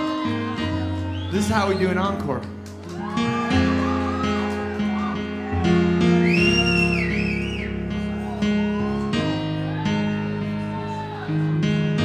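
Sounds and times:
high gliding whoop: 0:02.8 - 0:11.6.

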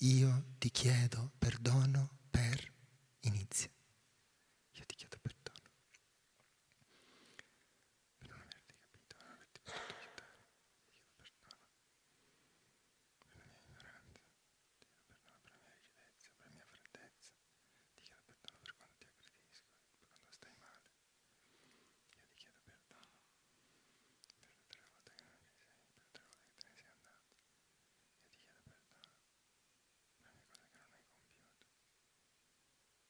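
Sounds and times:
people whispering: 0:00.0 - 0:03.7, 0:04.7 - 0:05.7, 0:08.2 - 0:11.7, 0:13.2 - 0:17.3, 0:18.0 - 0:20.9, 0:24.3 - 0:27.2, 0:28.2 - 0:29.2, 0:30.2 - 0:31.6.

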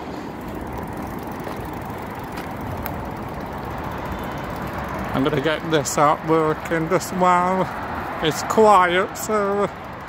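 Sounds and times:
road traffic noise: 0:00.0 - 0:10.0.

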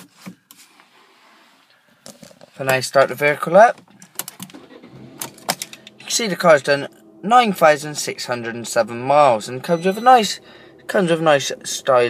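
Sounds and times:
low hush: 0:04.6 - 0:12.0.

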